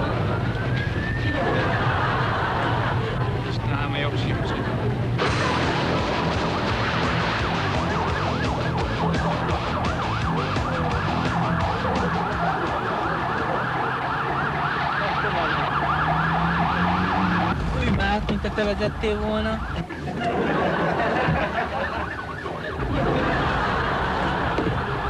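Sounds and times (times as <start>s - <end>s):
police siren wailing: 0.0s - 3.4s, 4.6s - 25.0s.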